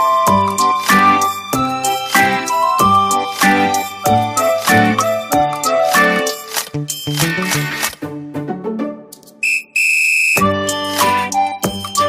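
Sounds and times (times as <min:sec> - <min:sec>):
shrill steady whistle tone: 0:09.4 - 0:11.0.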